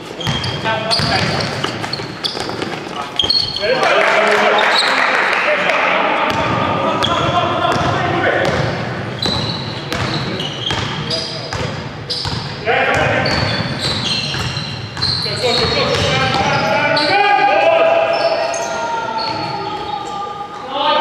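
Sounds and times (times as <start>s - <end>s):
basketball bouncing on court: 0.2s - 3.6s, 6.3s - 16.7s
players shouting: 15.4s - 21.0s.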